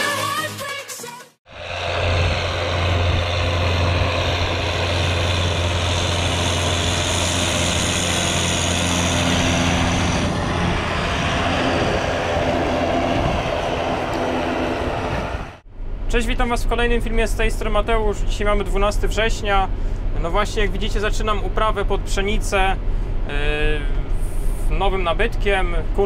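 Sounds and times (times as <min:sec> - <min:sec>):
tractor diesel engine hum: 0:01.5 - 0:26.0.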